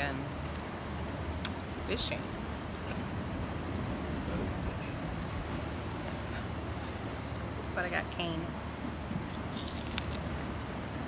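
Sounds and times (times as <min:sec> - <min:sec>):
sugar cane crunching: 0:09.5 - 0:10.2.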